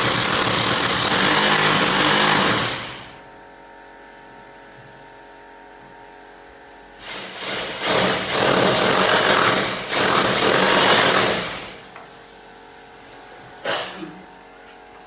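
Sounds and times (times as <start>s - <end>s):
hammer drill boring into masonry: 0.0s - 3.1s, 7.0s - 11.8s.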